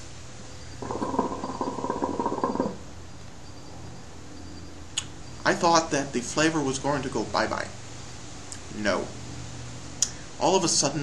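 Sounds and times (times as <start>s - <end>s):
hookah water bubbling: 0.8s - 2.8s.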